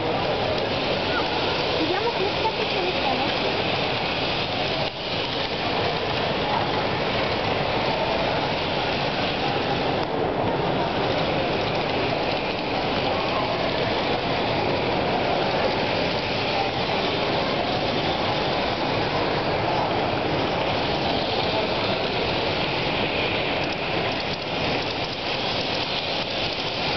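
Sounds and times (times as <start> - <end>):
exhibition hall background din: 0.0 - 26.9.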